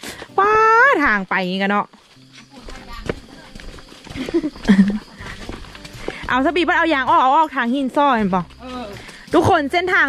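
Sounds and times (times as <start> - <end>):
footsteps on muddy path: 0.0 - 10.0.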